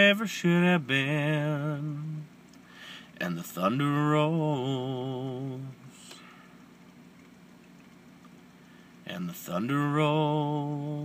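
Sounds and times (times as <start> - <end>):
low steady hum: 0.0 - 11.0.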